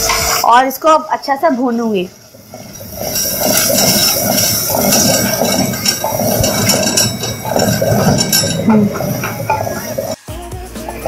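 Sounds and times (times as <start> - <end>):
curry bubbling and sizzling: 0.0 - 10.2
wooden spoon scraping pot: 2.2 - 10.2.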